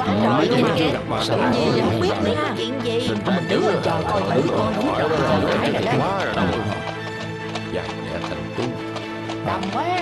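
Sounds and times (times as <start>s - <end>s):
horse hooves clip-clopping: 0.0s - 10.0s
soundtrack music: 0.0s - 10.0s.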